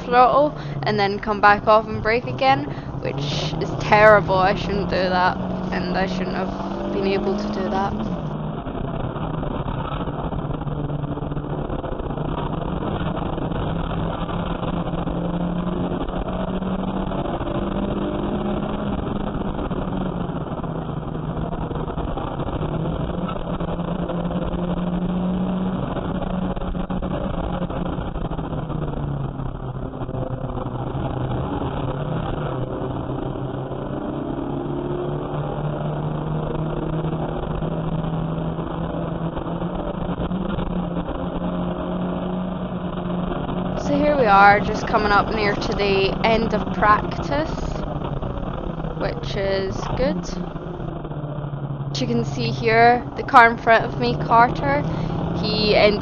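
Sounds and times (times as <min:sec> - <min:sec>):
race car engine from inside cabin: 0:00.0 - 0:56.0.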